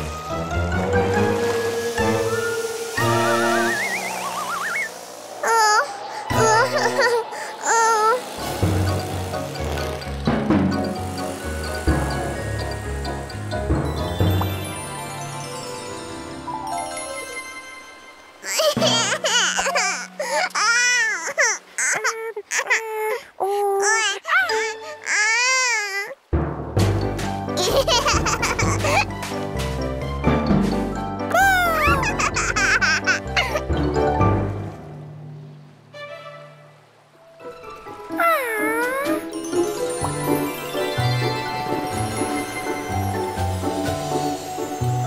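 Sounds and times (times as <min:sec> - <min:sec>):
rising wavering cartoon glides: 0:00.0 - 0:15.5, 0:31.3 - 0:34.0
cartoon baby crying: 0:03.0 - 0:08.4, 0:18.4 - 0:26.2, 0:27.6 - 0:29.1, 0:31.3 - 0:33.8, 0:38.1 - 0:39.3.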